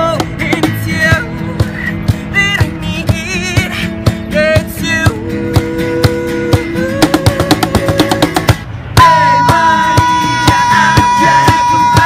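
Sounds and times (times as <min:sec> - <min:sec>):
acoustic guitar: 0:00.0 - 0:12.0
full band and voices: 0:00.0 - 0:12.0.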